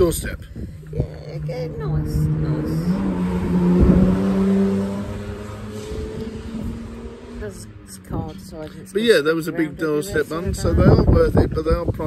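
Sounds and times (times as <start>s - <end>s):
vehicle engine passing by: 0.9s - 9.5s.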